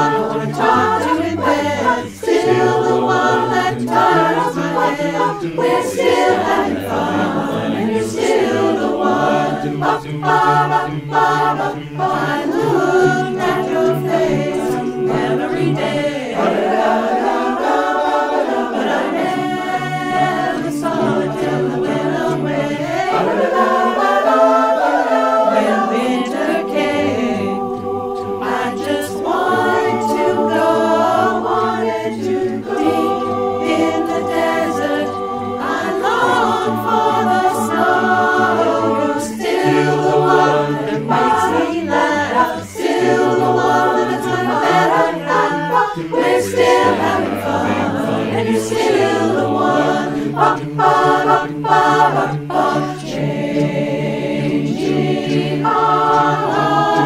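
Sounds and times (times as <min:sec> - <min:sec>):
chorus singing in close harmony: 0:00.0 - 0:57.0.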